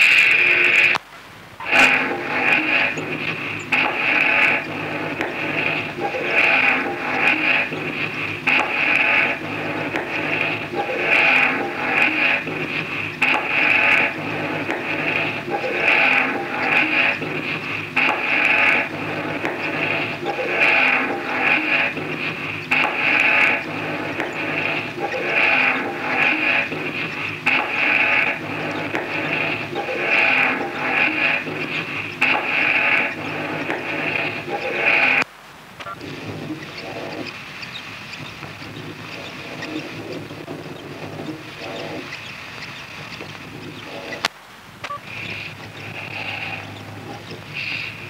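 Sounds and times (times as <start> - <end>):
harsh looping noise music: 0.0 - 1.0, 1.6 - 44.3, 44.9 - 48.0.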